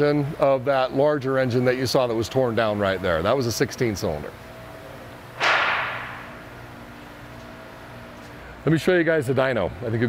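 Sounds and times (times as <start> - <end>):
industrial shop hum: 0.0 - 10.0
loud sudden hiss: 5.4 - 6.6.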